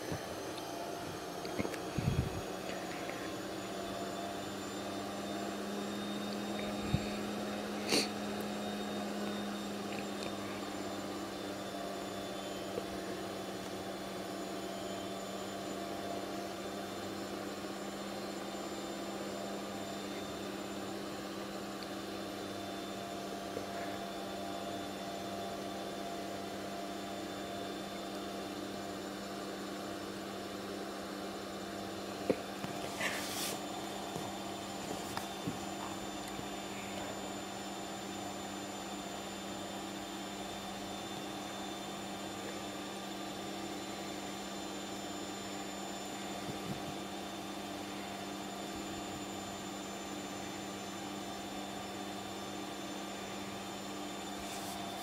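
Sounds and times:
steady multi-tone hum: 0.0 - 55.0.

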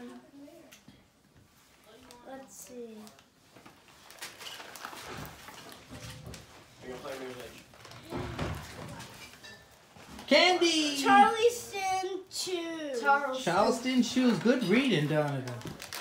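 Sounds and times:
fabric rustling and handling: 1.4 - 8.0.

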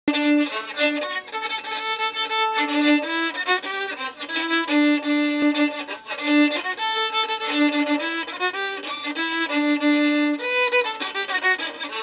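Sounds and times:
solo violin playing polka: 0.1 - 12.0.

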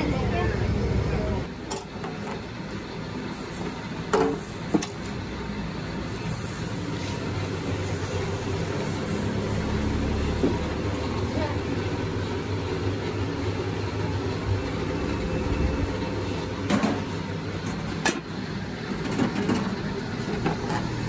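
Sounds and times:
street background noise: 0.0 - 21.0
vehicle engine idling: 0.0 - 21.0.

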